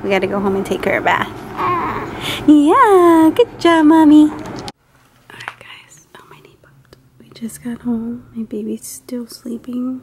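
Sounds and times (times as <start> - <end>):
woman whispering softly: 5.3 - 8.0.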